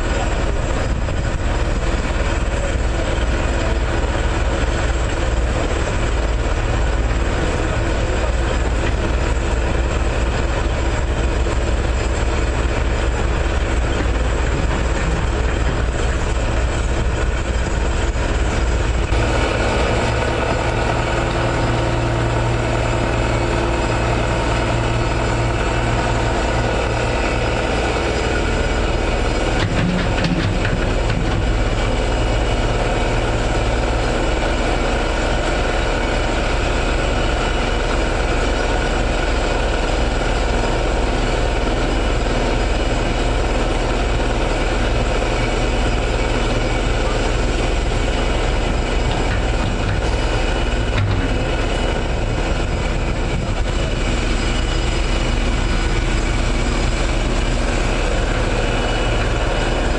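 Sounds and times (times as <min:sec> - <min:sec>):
heavy diesel machinery running: 0:00.0 - 0:59.9
clatter of knocks: 0:29.6 - 0:31.6.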